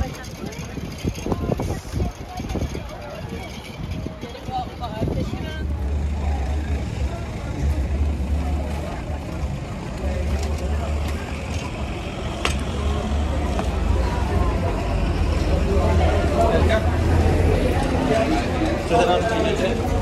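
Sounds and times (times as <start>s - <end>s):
low city rumble: 0.0s - 20.0s
passers-by talking: 0.0s - 20.0s.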